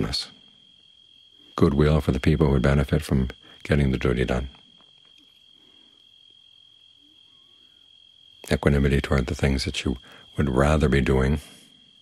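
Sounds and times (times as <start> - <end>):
crickets trilling: 0.0 - 12.0.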